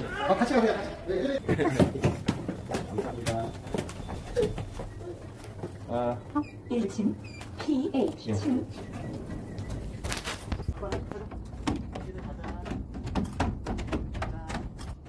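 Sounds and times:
people talking indistinctly: 2.5 - 13.0
sharp knocks and clicks: 7.4 - 15.0.

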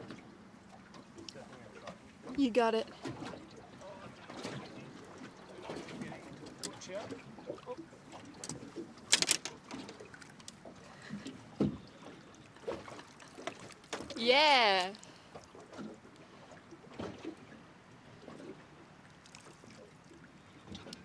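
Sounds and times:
water lapping: 0.0 - 21.0
fishing gear knocking: 8.4 - 10.6.

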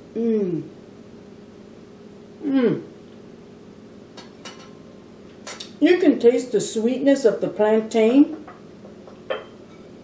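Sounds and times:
cutlery clinking on a plate: 4.2 - 4.8, 9.3 - 9.9.

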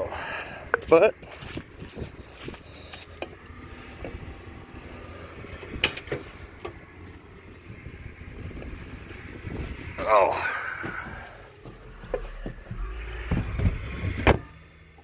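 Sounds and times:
tractor engine idling: 0.0 - 15.0.

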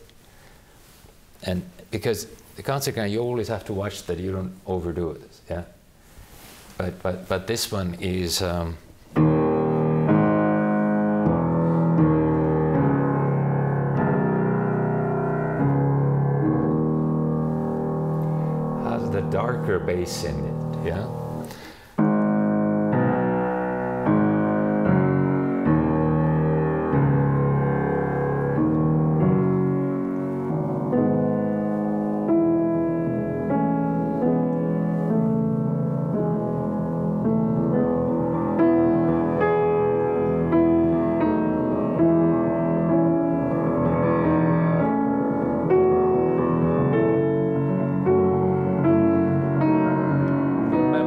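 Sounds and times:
grand piano slow chords: 9.1 - 51.0.

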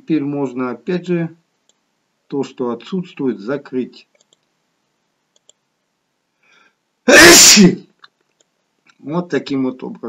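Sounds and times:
person sneezing loudly: 7.1 - 7.9.

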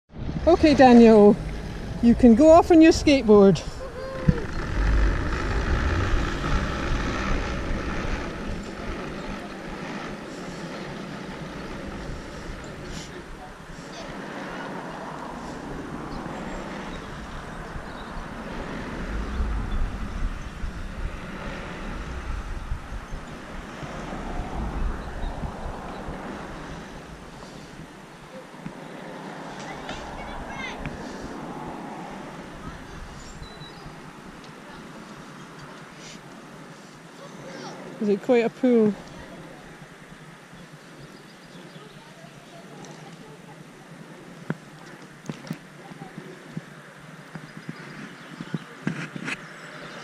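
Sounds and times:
heavy low surge: 0.1 - 9.7, 16.9 - 27.3
obstacle rolling along steel cable: 0.1 - 28.0.

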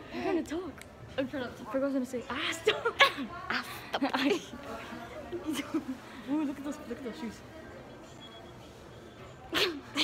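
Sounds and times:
shop background noise: 0.0 - 10.0.

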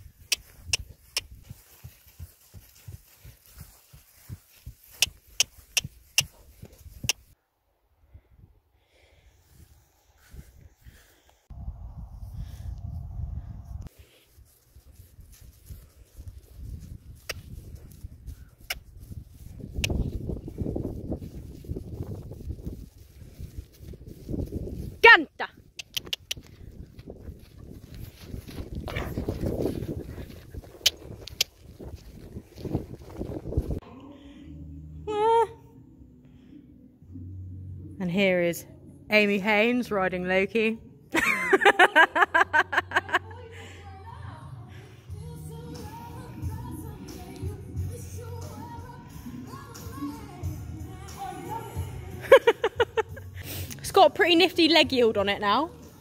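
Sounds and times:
hoofbeats with sharp clicks: 0.0 - 7.4, 13.8 - 21.8, 25.6 - 33.2
wind on microphone: 9.5 - 13.9, 14.9 - 33.8.

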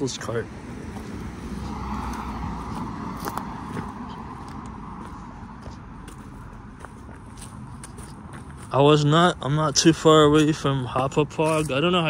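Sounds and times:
car driving past: 0.4 - 7.0
footsteps on grass: 0.8 - 12.0.

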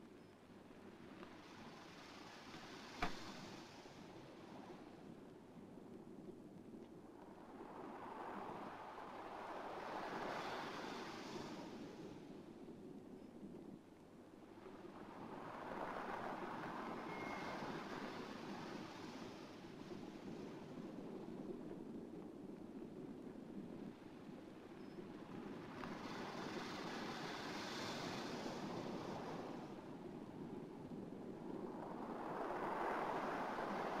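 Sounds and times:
waves breaking on beach: 7.4 - 12.3, 14.5 - 20.8, 25.5 - 30.0, 31.5 - 34.0.

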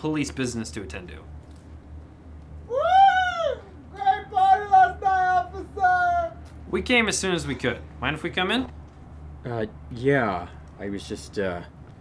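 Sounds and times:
man whooping: 2.6 - 6.5.

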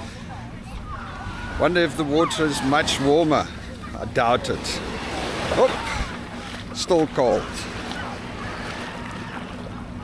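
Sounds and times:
small waves washing at shoreline: 1.2 - 9.8.

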